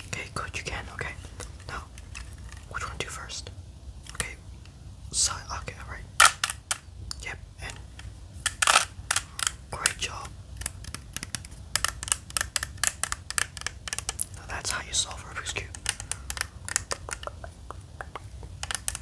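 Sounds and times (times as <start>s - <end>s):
puzzle cube clicking and scraping: 0.0s - 3.1s, 4.1s - 4.4s, 6.2s - 6.8s, 7.6s - 19.0s
sharp plastic clacks: 0.9s - 2.8s, 4.0s - 4.8s, 6.2s - 19.0s.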